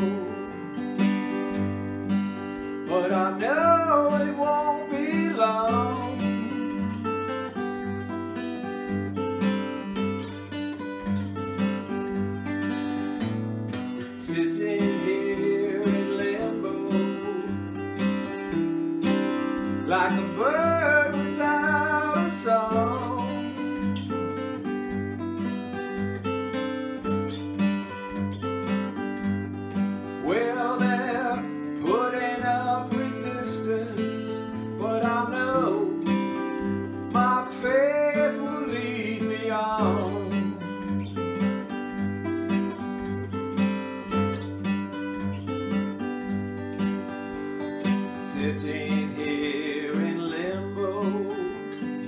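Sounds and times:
man singing: 0.0 - 0.8, 2.8 - 7.2, 14.2 - 18.5, 19.1 - 24.0, 30.1 - 40.9, 48.2 - 52.0
acoustic guitar strumming: 0.0 - 52.0.

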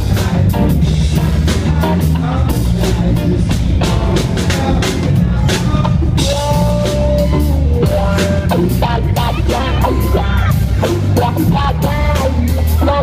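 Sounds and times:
driving drum kit: 0.0 - 13.0
heavy bass: 0.0 - 13.0
live band playing loudly: 0.0 - 13.0.

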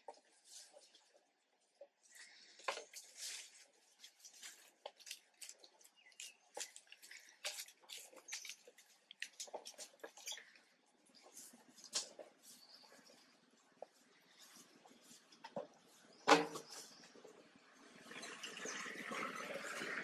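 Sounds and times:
faint crackles on dry leaves: 2.1 - 15.4
water drips and splashes: 17.2 - 20.0.

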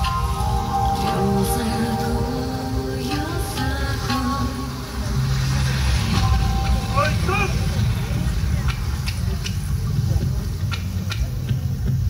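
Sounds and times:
dance music over loudspeakers: 0.0 - 12.0
heavy low rumble: 0.0 - 12.0.

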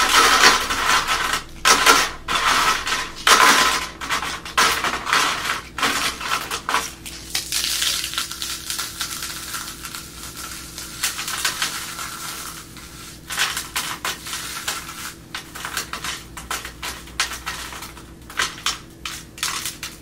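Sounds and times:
crumbs dropping into plastic tray: 0.0 - 20.0
rice crisps crushed between hands: 0.0 - 20.0.

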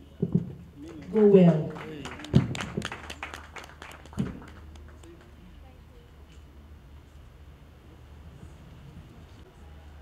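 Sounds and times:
scattered hand-clapping: 0.8 - 5.4.

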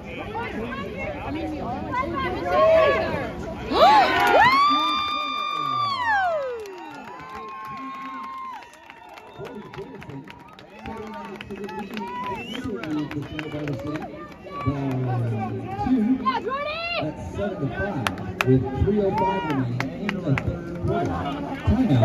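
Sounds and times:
crowd chatter: 0.0 - 6.0, 9.1 - 22.0
crowd cheering: 3.7 - 22.0.

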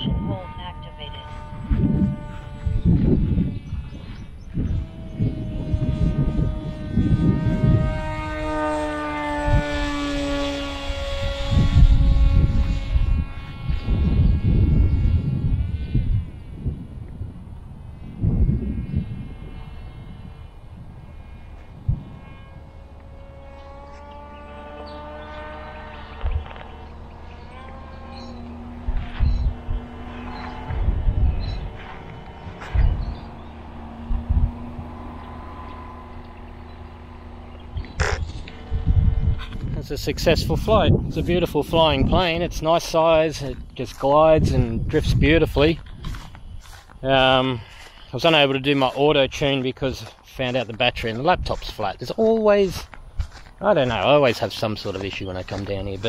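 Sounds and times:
propeller motor whine passing: 0.0 - 56.0
wind buffeting microphone: 0.0 - 56.0.

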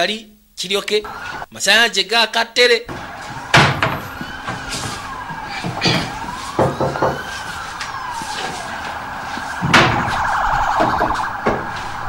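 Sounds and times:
siren yelping: 1.0 - 1.5, 2.9 - 12.0.

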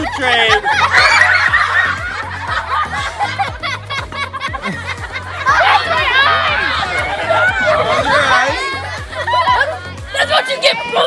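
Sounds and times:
music with beat and bass: 0.0 - 11.0
people laughing and giggling: 0.0 - 11.0.

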